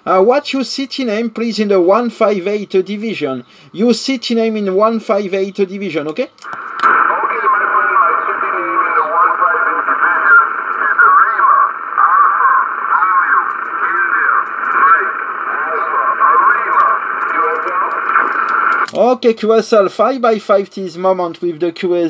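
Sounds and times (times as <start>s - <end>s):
steady radio hiss: 0.0s - 21.2s
radio speech: 0.1s - 21.8s.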